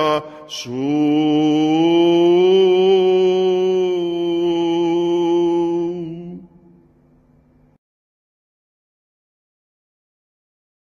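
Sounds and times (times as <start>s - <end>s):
man singing long chant note: 0.0s - 6.8s.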